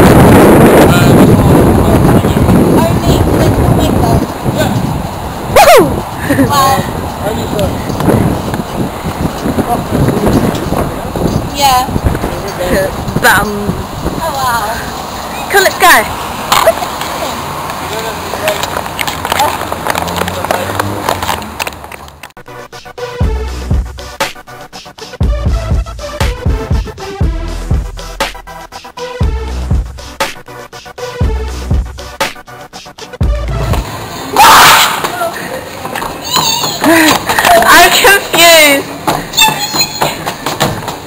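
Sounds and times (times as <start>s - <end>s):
outdoor background noise: 0.0s - 41.0s
music: 22.4s - 34.5s
teenagers shrieking and squealing: 34.3s - 38.2s, 39.3s - 40.3s.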